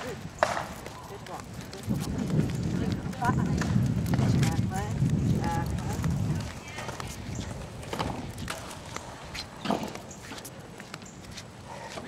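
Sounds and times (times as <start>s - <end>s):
dog claws clicking on pavement: 0.0s - 11.5s
footsteps on pavement: 0.0s - 12.0s.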